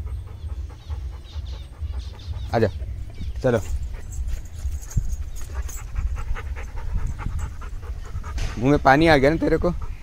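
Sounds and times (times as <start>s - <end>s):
dog panting quickly: 0.0s - 10.0s.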